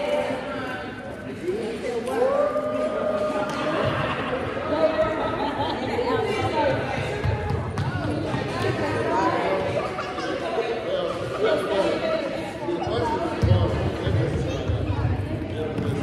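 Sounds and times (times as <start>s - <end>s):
adults and children chattering: 0.0s - 16.0s.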